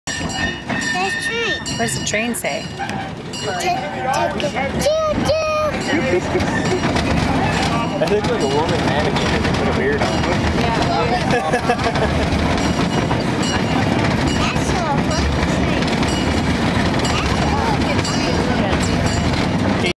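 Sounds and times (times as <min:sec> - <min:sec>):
ride-on train rumble: 0:00.1 - 0:19.9
voices: 0:00.2 - 0:19.9.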